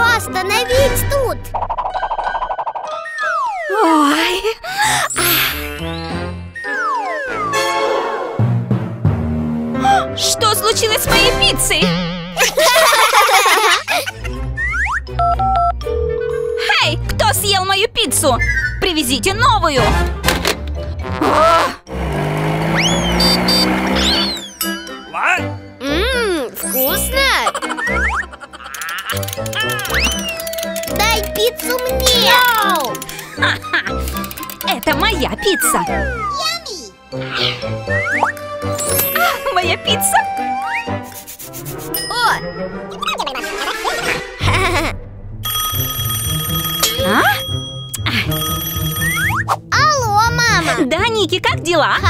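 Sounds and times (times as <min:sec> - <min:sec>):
background music: 0:00.0 - 0:52.0
telephone ringing: 0:15.2 - 0:16.9, 0:45.4 - 0:49.4
cartoon car skidding: 0:22.6 - 0:24.6.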